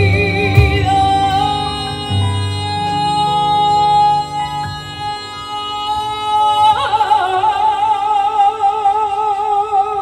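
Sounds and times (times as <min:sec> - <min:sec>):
woman singing with vibrato: 0:00.0 - 0:10.0.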